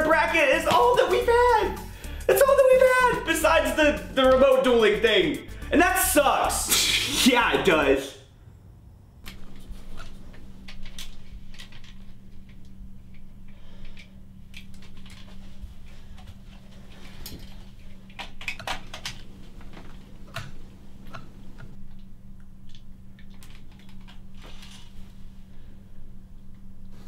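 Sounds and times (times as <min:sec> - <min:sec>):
steady low hum: 0:00.0 - 0:27.0
camera handling clicks and rattles: 0:09.3 - 0:13.3, 0:13.9 - 0:15.4, 0:17.2 - 0:20.6, 0:22.6 - 0:24.8.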